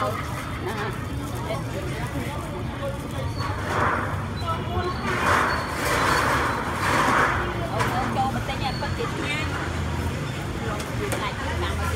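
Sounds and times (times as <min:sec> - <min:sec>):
people talking: 0:00.0 - 0:05.6, 0:06.9 - 0:11.9
passing road traffic: 0:00.0 - 0:11.9.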